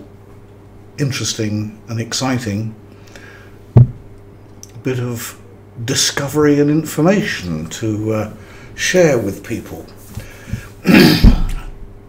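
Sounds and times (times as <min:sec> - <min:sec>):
man clearing throat: 0:10.8 - 0:11.8.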